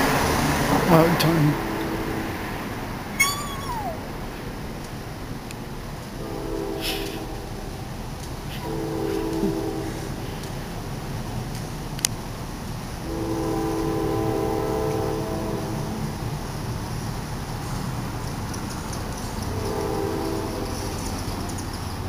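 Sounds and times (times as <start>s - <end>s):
train horn blasts: 1.5s - 2.8s, 6.2s - 7.8s, 8.5s - 10.4s, 13.0s - 16.3s, 19.5s - 21.2s.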